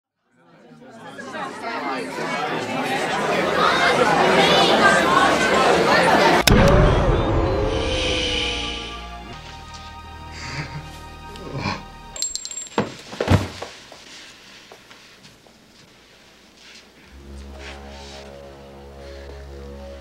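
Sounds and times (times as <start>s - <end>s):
murmur of voices chattering: 0.3s - 6.5s
low rumble: 6.4s - 9.4s.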